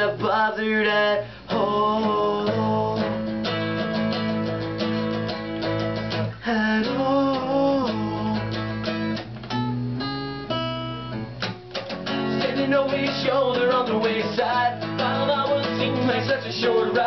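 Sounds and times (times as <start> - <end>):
acoustic guitars playing: 0.0 - 17.0.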